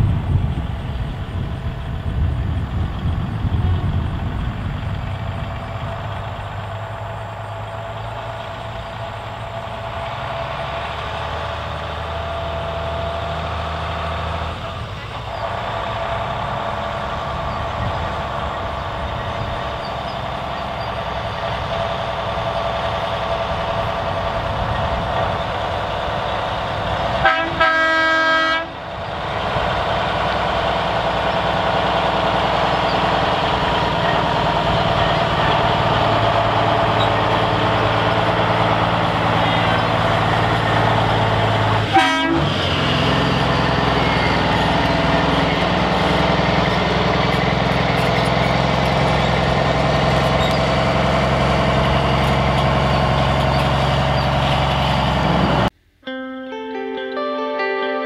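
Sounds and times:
truck diesel engine running: 0.0 - 55.7
truck horn blast: 27.2 - 28.9, 39.3 - 46.0.

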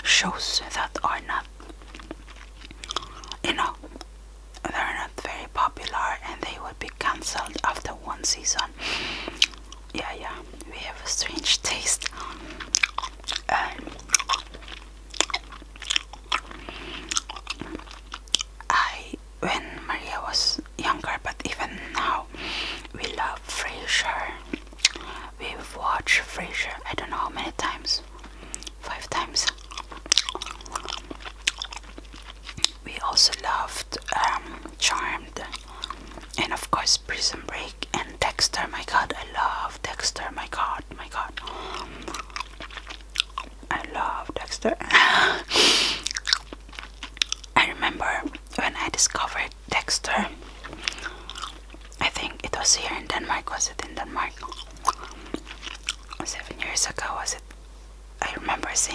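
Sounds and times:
gum chewing mouth clicks: 0.6 - 4.7, 8.6 - 18.7, 24.3 - 25.2, 27.0 - 36.5, 40.0 - 44.6, 45.4 - 56.7
breathy hiss: 8.7 - 9.5, 21.6 - 23.0, 24.9 - 25.4, 44.9 - 46.1
breathy whisper-like sounds: 18.7 - 29.6, 32.8 - 42.4, 47.6 - 57.4.

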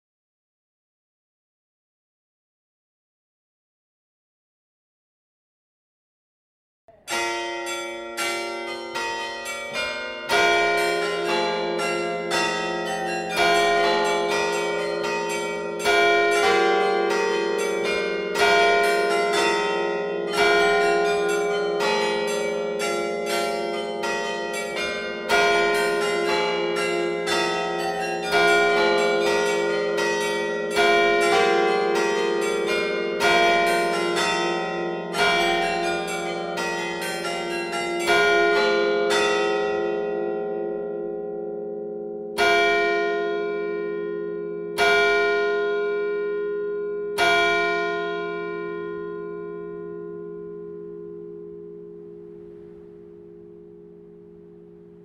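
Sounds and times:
carillon bells playing a tune: 6.9 - 40.4.

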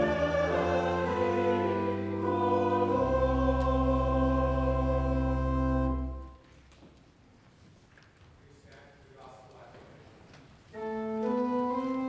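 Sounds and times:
church choir singing: 0.0 - 6.4
pipe organ: 0.0 - 6.4, 10.8 - 12.0.

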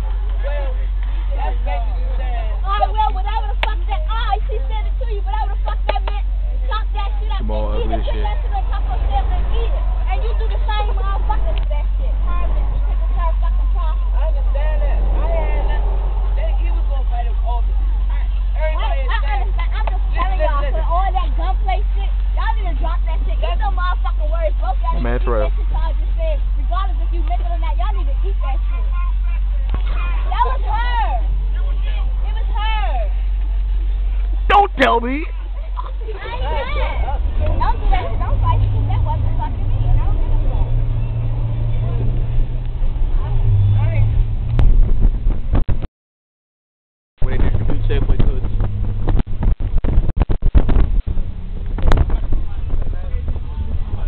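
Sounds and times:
bus engine droning: 0.0 - 45.6, 50.7 - 54.0
children chattering: 1.4 - 33.2, 33.9 - 42.2.

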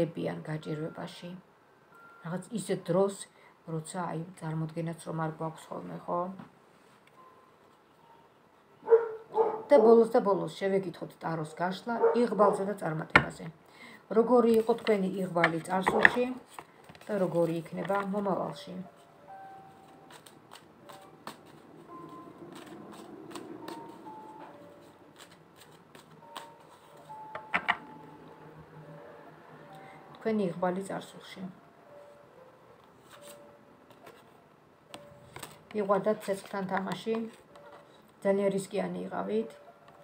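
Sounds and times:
woman talking: 0.0 - 1.4, 2.2 - 6.5, 9.7 - 16.5, 17.1 - 18.9, 30.2 - 31.6, 35.7 - 37.4, 38.2 - 39.6
small dog barking: 8.8 - 9.7, 12.0 - 12.7
cards being shuffled: 20.1 - 24.0, 25.1 - 27.1, 33.0 - 34.3, 35.3 - 38.2.

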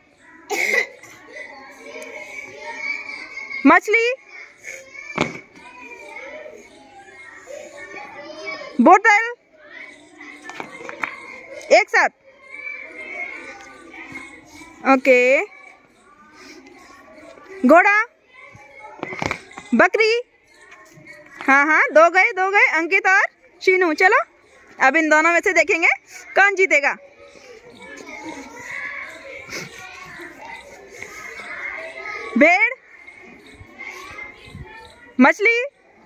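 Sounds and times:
distant children's voices: 0.0 - 36.0.

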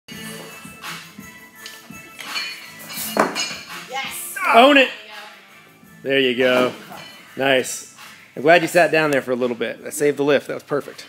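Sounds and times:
background music: 0.1 - 11.0.

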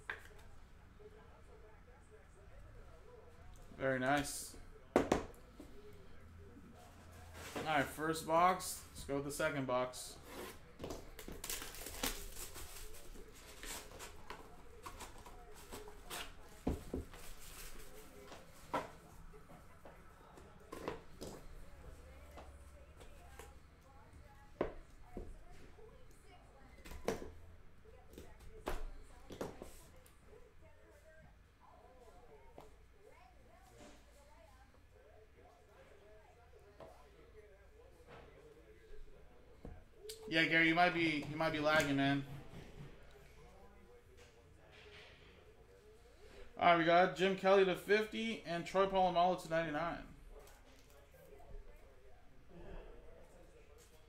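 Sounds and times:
crinkling of wrap and cardboard: 11.1 - 16.2.

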